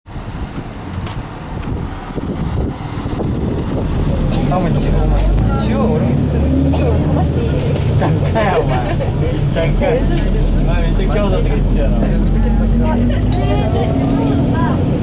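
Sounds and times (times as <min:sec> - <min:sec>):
street traffic: 0:00.0 - 0:15.0
bus diesel engine drone: 0:00.1 - 0:15.0
people talking: 0:04.1 - 0:15.0.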